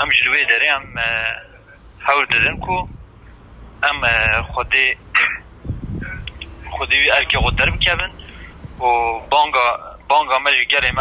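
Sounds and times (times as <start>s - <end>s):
man speaking over telephone: 0.0s - 2.9s, 3.8s - 5.5s, 6.1s - 11.0s.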